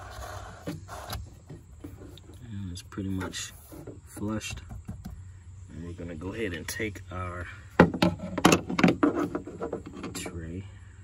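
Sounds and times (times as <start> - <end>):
hard plastic clacks and knocks: 3.2 - 5.2, 7.8 - 10.4.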